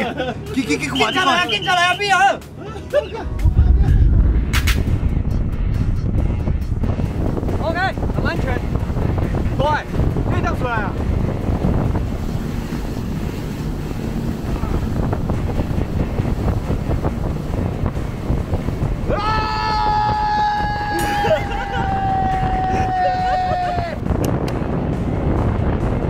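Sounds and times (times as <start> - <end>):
speedboat engine rumble: 0.0 - 26.0
man shouting: 0.6 - 2.4, 19.1 - 24.0
wind buffeting microphone: 3.2 - 26.0.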